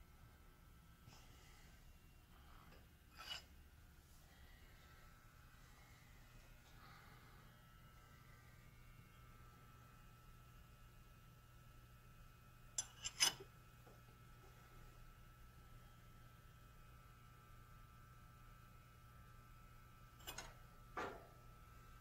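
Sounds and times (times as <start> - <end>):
faint low hum: 0.0 - 22.0
wrench clinking on metal nut: 12.8 - 13.4.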